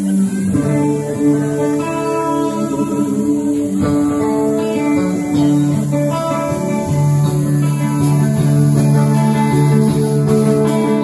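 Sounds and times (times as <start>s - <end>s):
clean electric guitar picking: 0.0s - 11.0s
deep held notes: 0.0s - 11.0s
sustained keyboard chords: 0.0s - 11.0s.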